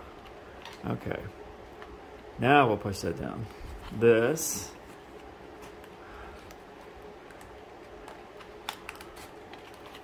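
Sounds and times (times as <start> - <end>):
cardboard parts clicking: 7.2 - 10.0.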